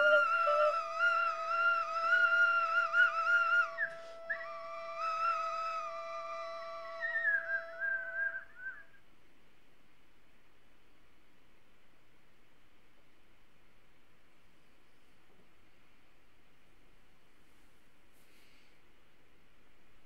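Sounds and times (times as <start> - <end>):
steady high wind instrument tone: 0.0 - 9.0
wavering whistle-like tone: 0.0 - 9.0.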